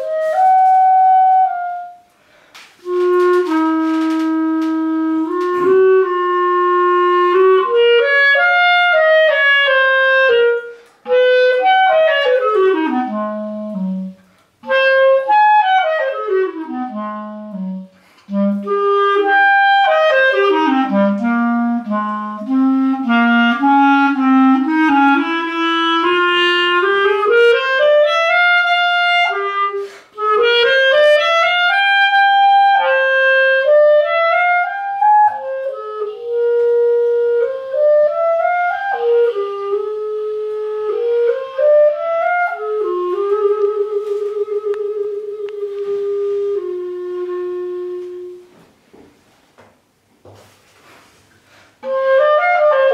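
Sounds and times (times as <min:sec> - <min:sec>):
solo clarinet: 0:00.0 - 0:49.1, 0:50.3 - 0:52.9.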